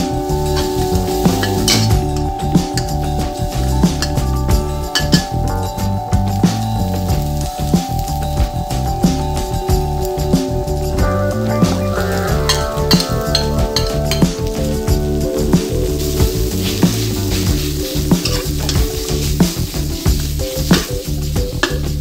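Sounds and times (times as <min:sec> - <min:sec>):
meat sizzling in hot oil: 0:00.2 - 0:04.2, 0:05.0 - 0:08.8, 0:12.0 - 0:22.0.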